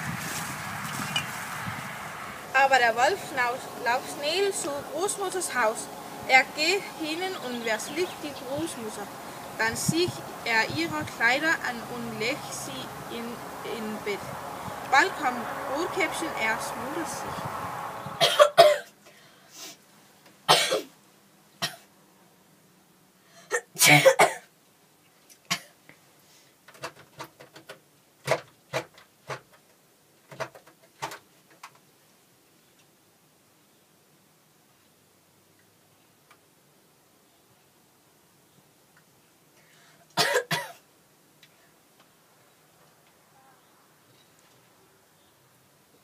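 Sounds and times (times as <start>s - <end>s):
girl coughing: 18.2s - 19.0s, 20.5s - 20.9s, 23.5s - 24.5s, 40.2s - 40.8s.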